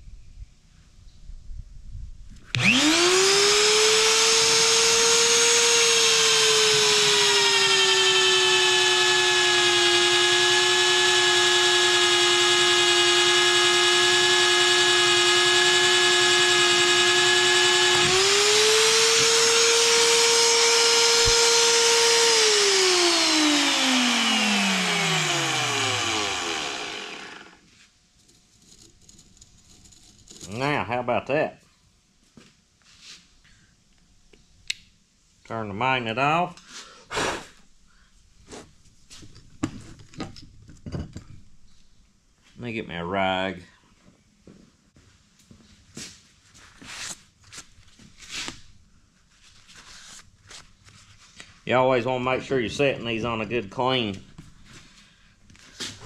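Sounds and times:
magnetic drill motor whining: 2.5 - 27.6.

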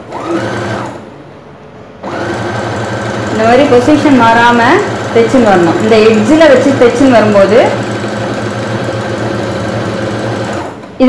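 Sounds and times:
sewing machine running: 0.0 - 1.0, 2.0 - 10.9.

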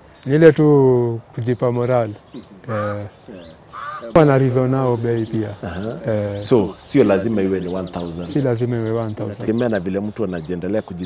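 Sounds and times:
bird calling: 0.0 - 11.0
man talking: 0.2 - 11.0.

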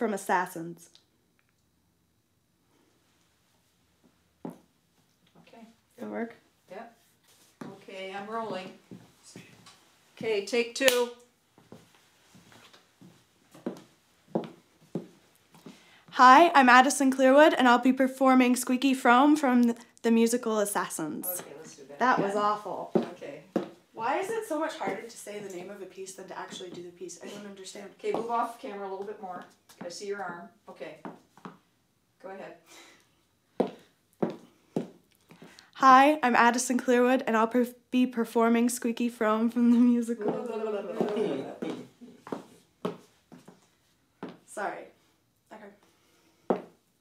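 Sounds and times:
soft footsteps on wooden floor: 4.0 - 5.5, 7.0 - 10.4, 11.5 - 15.8, 21.3 - 23.9, 24.8 - 25.4, 33.5 - 35.6, 39.8 - 44.5, 46.5 - 46.8.

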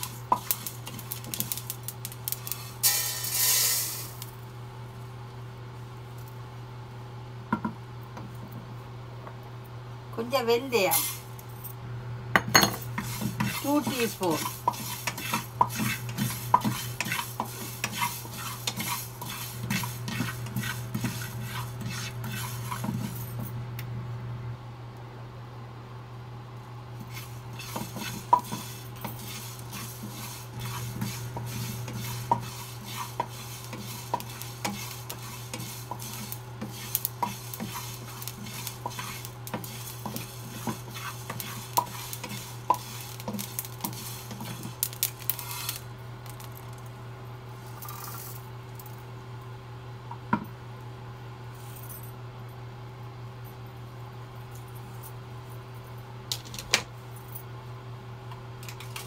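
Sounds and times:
spatula scraping seeds in a pan: 0.0 - 4.3, 12.9 - 23.2, 27.0 - 45.8
steady low hum: 0.0 - 56.3.

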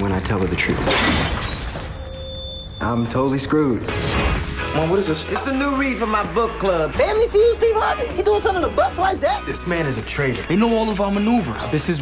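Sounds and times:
faint held tone: 1.5 - 3.2
sudden crash: 3.8 - 4.8.

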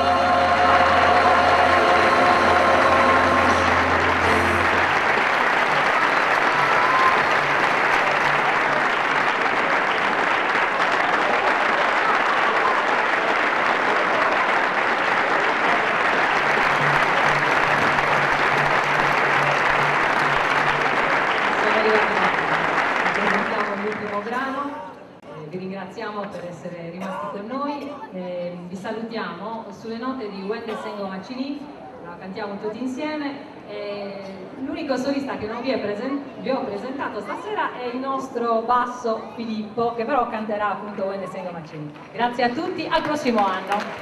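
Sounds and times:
choir holding final chord: 0.0 - 7.9
audience applauding: 0.0 - 24.7, 41.8 - 44.0.

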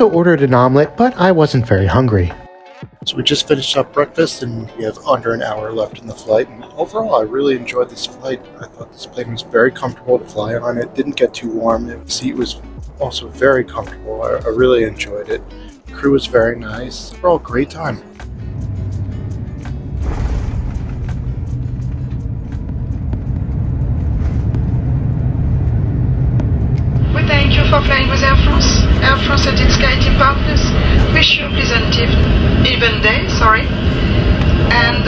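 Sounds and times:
airliner rumble on runway: 18.0 - 35.0.

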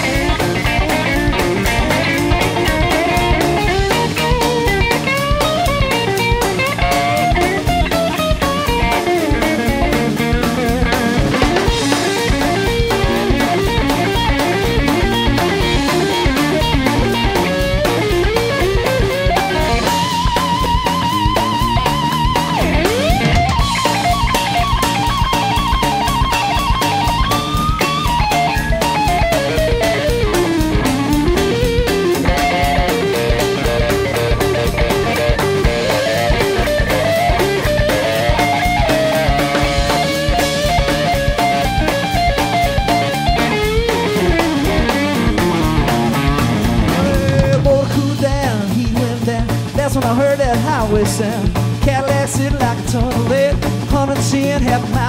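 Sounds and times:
electric guitar solo: 0.0 - 48.6
rock and roll drum beat: 0.0 - 55.0.

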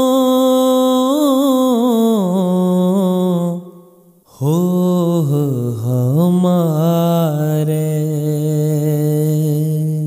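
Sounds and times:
person singing devotional song: 0.0 - 10.0.

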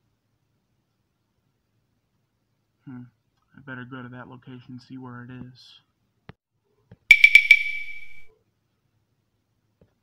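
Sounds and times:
bright ringing chime strikes: 7.1 - 8.3.

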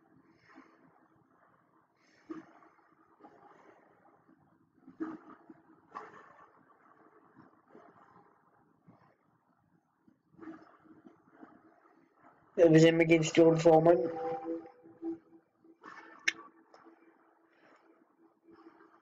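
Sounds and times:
muffled video soundtrack from speakers: 0.0 - 19.0.

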